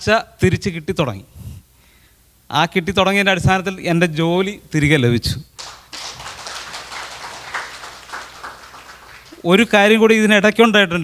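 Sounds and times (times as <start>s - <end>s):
small group clapping: 5.6s - 9.6s.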